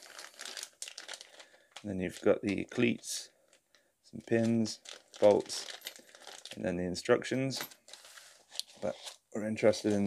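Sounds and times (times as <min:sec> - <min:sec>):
plastic bag crinkling: 0:00.0 - 0:03.6, 0:04.2 - 0:06.6.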